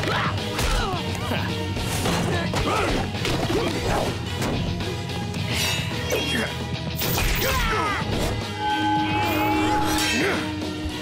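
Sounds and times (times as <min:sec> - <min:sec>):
action background music: 0:00.0 - 0:11.0.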